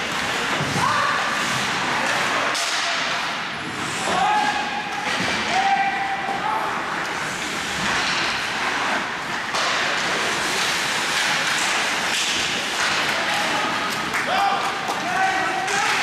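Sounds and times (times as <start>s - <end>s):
skates on ice: 6.4s - 16.0s.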